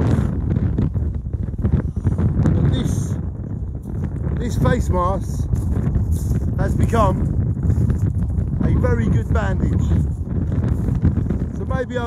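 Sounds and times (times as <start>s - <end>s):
wind buffeting a microphone: 0.0s - 12.0s.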